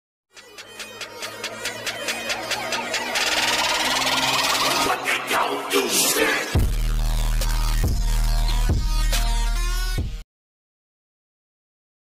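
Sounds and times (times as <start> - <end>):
rapid electronic ticks: 0.3 - 4.8.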